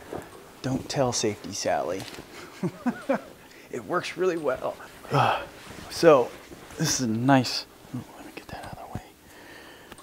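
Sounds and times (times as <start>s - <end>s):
cloth rustling on microphone: 4.8s - 7.1s.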